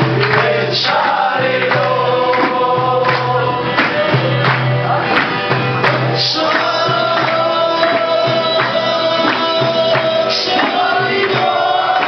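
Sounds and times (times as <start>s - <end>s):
voices singing a long note: 0.0s - 4.1s, 6.1s - 12.0s
percussion hits: 0.0s - 12.0s.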